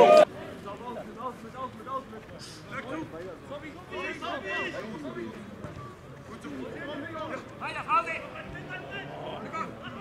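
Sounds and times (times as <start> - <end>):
voices calling out: 0.0 - 0.3.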